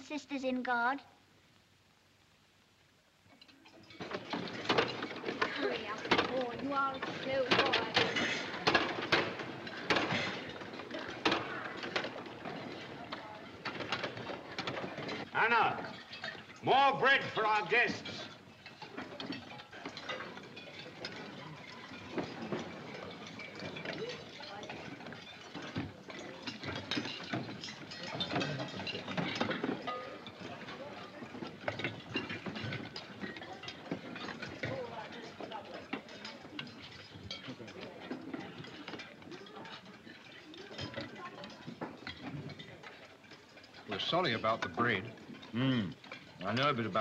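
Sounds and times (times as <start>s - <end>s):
spoons clinking on bowls: 17.2s - 47.0s.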